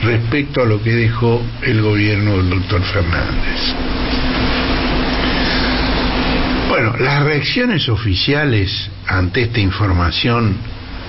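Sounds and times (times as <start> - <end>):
constant low hum: 0.0 - 11.0
loud rushing noise: 1.5 - 7.4.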